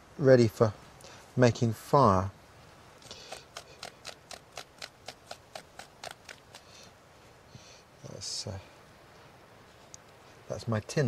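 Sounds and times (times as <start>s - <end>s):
dry scraping of fungus: 3.0s - 6.8s.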